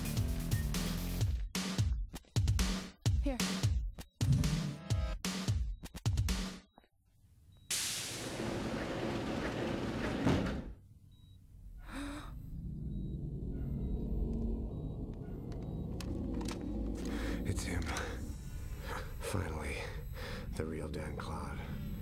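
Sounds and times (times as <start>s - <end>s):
low machinery hum: 11.2s - 22.0s
clicks: 14.2s - 18.3s.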